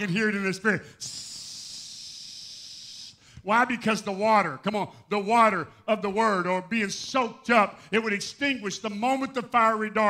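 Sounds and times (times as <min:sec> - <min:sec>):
man hissing through teeth: 0:00.9 - 0:03.4.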